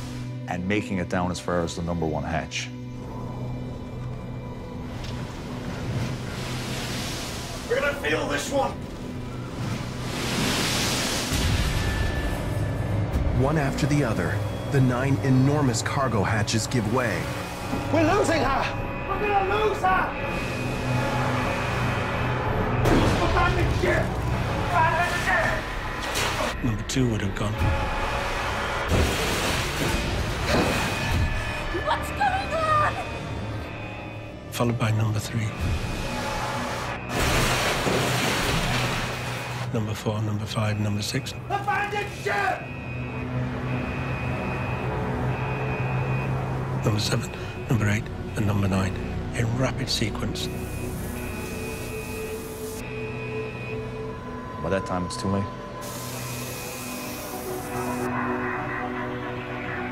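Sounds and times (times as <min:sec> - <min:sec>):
low music drone: 0:00.0 - 0:59.9
storm and crashing waves: 0:05.4 - 0:12.2
waves crashing over ship bow: 0:09.7 - 0:11.8
voices shouting: 0:17.8 - 0:21.6, 0:31.6 - 0:33.8.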